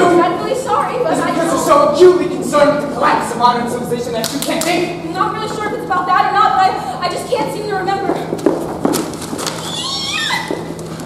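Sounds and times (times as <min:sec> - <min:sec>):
person squealing: 0:09.6 - 0:10.7.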